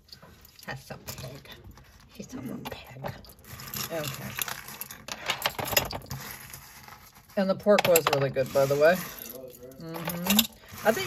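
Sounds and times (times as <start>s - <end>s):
metal jewelry clinking: 0.0s - 11.0s.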